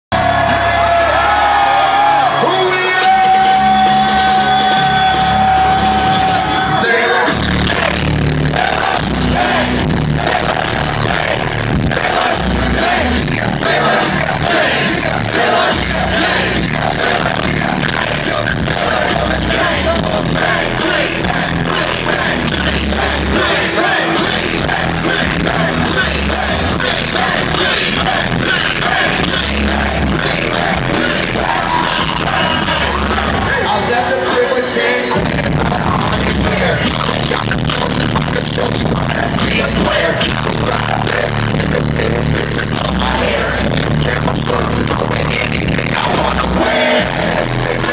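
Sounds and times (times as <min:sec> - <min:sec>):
heavy bass notes: 0:00.1 - 0:02.2, 0:02.8 - 0:47.9
loud live concert music: 0:00.1 - 0:47.9.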